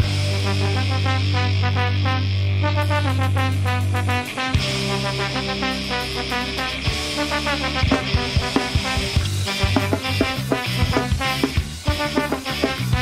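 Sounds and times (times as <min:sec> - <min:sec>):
ska-punk band playing: 0:00.0 - 0:13.0
sharp drum hits: 0:07.9 - 0:12.8.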